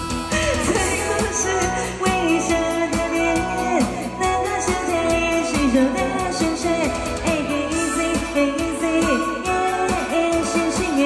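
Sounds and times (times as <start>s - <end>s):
amplified backing music: 0.0s - 11.0s
woman singing pop song: 0.2s - 11.0s.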